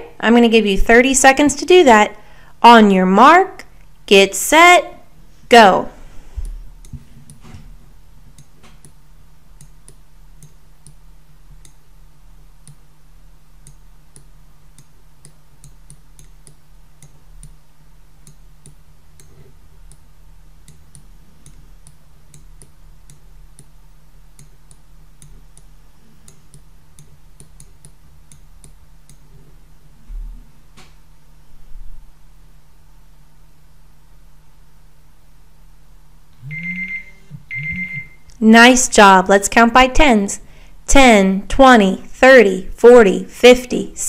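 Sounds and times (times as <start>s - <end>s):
low steady hum: 0.0s - 44.0s.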